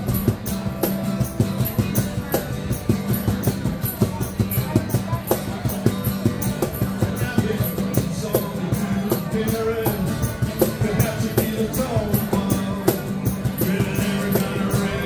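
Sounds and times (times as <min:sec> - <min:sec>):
acoustic guitar strumming: 0:00.0 - 0:15.0
cajon and jingle percussion: 0:00.0 - 0:15.0.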